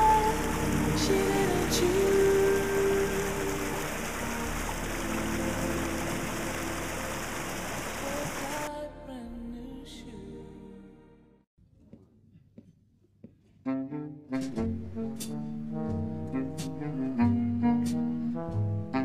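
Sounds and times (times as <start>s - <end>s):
stream water rushing over rocks: 0.0s - 8.7s
slow background music: 0.0s - 11.4s, 13.7s - 19.0s.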